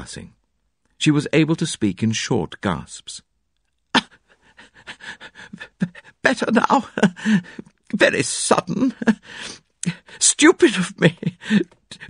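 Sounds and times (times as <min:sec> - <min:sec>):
man gasping and panting: 0:04.0 - 0:06.2, 0:07.0 - 0:07.8, 0:09.1 - 0:10.2, 0:11.3 - 0:12.0.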